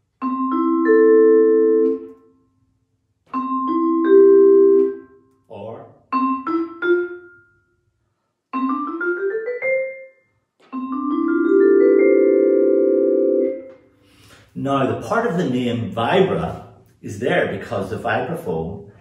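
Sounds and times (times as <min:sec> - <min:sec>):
vibraphone struck with mallets: 0:03.3 - 0:05.1, 0:06.1 - 0:07.6, 0:08.6 - 0:13.4.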